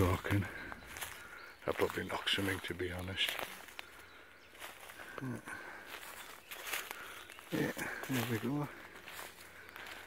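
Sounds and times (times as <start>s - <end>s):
footsteps in dry leaves: 0.0s - 10.0s.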